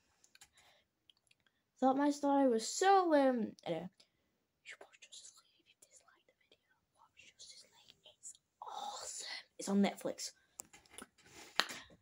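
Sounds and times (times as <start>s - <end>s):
faint whispering: 4.6s - 9.7s.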